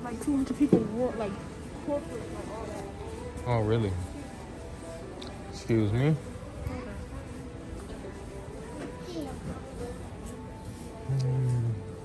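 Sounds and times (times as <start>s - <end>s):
faint distant sounds: 0.0s - 12.0s.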